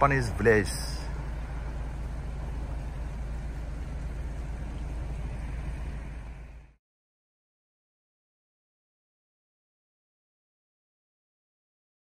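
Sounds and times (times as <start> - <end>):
low outdoor rumble: 0.0 - 6.8.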